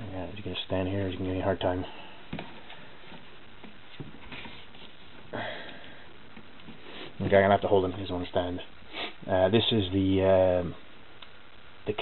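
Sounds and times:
faint steady hiss: 0.0s - 12.0s
person sniffing: 6.8s - 7.2s, 8.9s - 9.2s.

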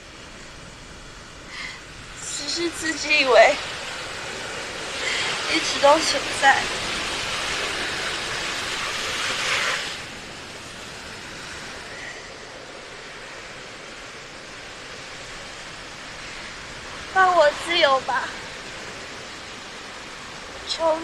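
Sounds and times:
sea surf on a beach: 0.0s - 21.0s.

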